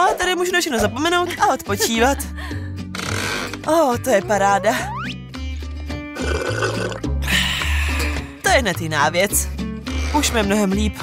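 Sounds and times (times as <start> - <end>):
background music with bass line: 0.3 - 11.0
slurping drink through straw: 3.0 - 3.6, 6.2 - 7.0.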